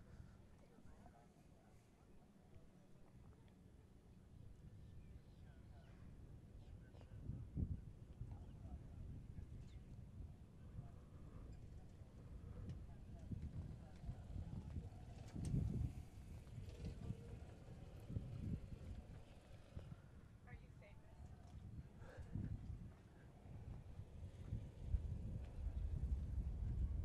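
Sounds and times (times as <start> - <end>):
faint distant voices: 0.0 - 26.9
low uneven rumble: 6.8 - 27.0.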